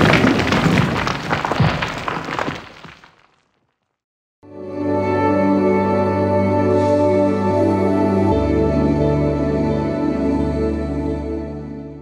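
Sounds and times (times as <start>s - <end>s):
heavy crash: 0.0s - 3.2s
clatter of small debris: 0.0s - 4.0s
stone crumbling: 0.0s - 4.0s.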